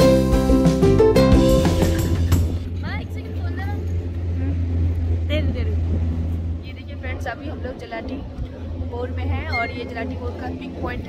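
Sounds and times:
steady low hum: 0:01.7 - 0:11.0
voices speaking: 0:02.7 - 0:11.0.

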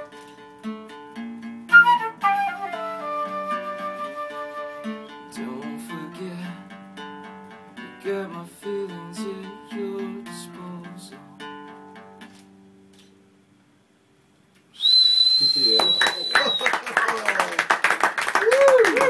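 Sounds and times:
acoustic guitar chords: 0:00.0 - 0:13.5
loud high steady whistle: 0:14.8 - 0:16.8.

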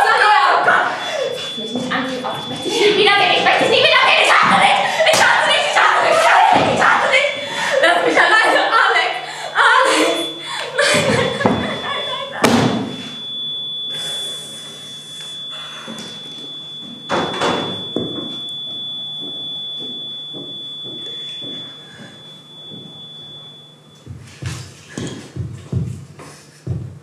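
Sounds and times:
heavy thumps on wooden stage: 0:24.1 - 0:26.0, 0:26.7 - 0:27.0.

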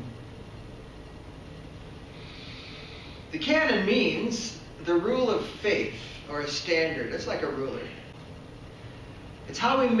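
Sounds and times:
low background hum: 0:00.0 - 0:10.0
faint hiss: 0:01.6 - 0:10.0.

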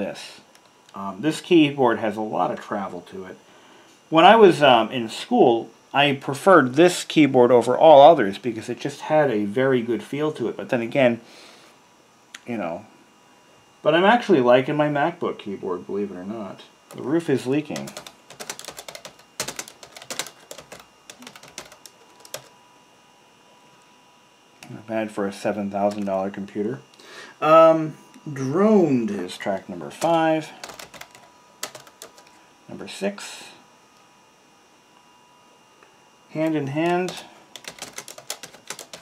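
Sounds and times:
faint steady hum and hiss: 0:00.0 - 0:39.0
laptop keyboard typing: 0:17.6 - 0:22.5, 0:25.7 - 0:26.2, 0:30.0 - 0:32.3, 0:36.8 - 0:39.0.

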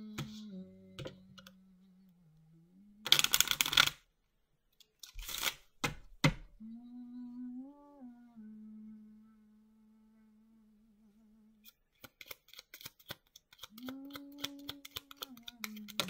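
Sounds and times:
person humming: 0:00.0 - 0:03.8, 0:06.6 - 0:11.8, 0:13.6 - 0:16.0
cards being shuffled: 0:03.1 - 0:04.0, 0:05.0 - 0:06.0, 0:11.6 - 0:16.0.

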